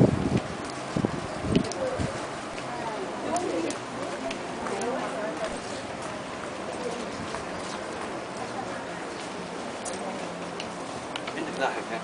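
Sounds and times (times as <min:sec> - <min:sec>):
steady background noise: 0:00.0 - 0:12.0
faint indistinct voices: 0:00.4 - 0:12.0.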